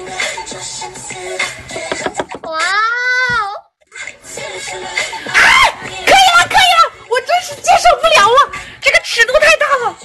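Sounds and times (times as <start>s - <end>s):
woman squealing and shrieking: 5.3s - 5.8s.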